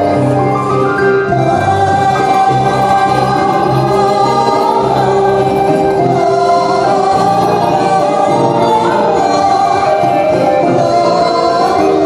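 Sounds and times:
voices singing along: 1.2 - 12.0
woman singing ornamented melody: 1.2 - 12.0.

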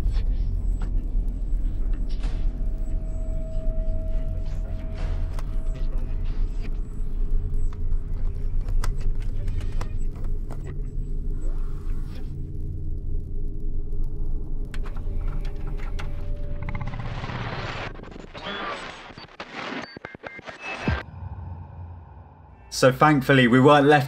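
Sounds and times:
deep rumbling drone: 0.0 - 18.5, 21.0 - 23.6.

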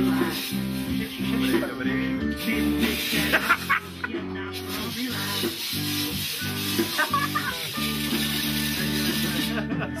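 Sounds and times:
fire extinguisher hissing: 0.0 - 9.8
music with low chords: 0.0 - 10.0.

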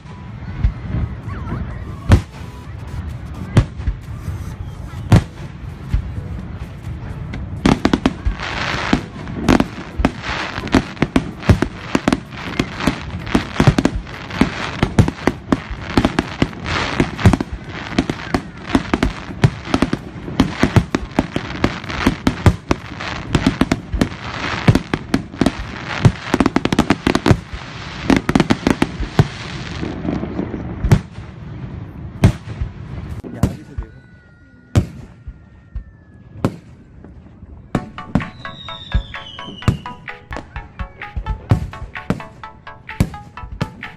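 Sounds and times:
fireworks bursting and crackling: 0.0 - 34.0, 34.7 - 43.9.

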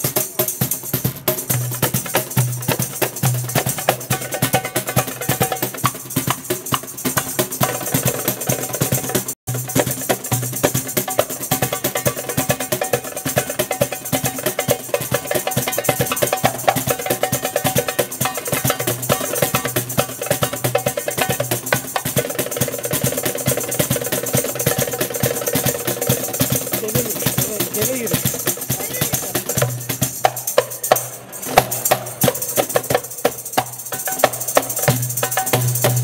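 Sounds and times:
box drum strokes: 0.0 - 36.0.

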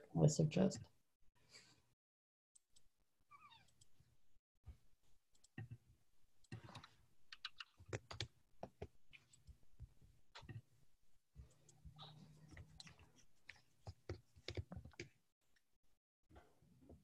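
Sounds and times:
computer keyboard typing: 6.5 - 9.5, 12.5 - 15.1.

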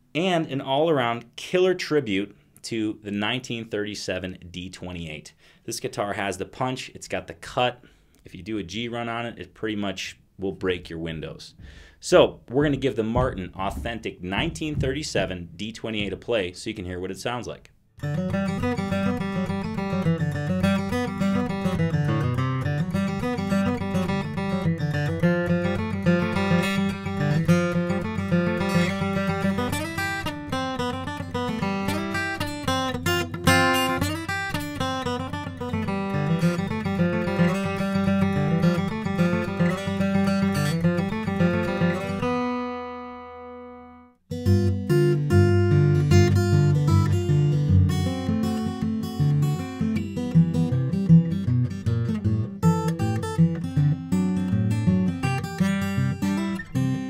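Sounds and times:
acoustic guitar playing: 11.6 - 16.4, 18.0 - 57.0.

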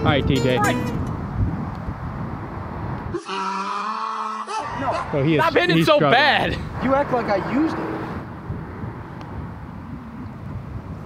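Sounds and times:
wind rumbling on microphone: 0.0 - 3.2, 4.7 - 11.0
man's drawn-out ohh: 3.1 - 5.1.

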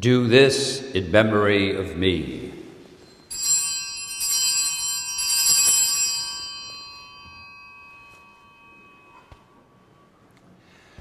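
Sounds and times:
altar bells ringing: 3.0 - 10.9.

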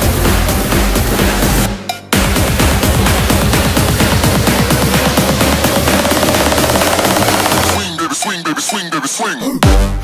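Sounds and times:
fast snare roll: 2.2 - 7.8.

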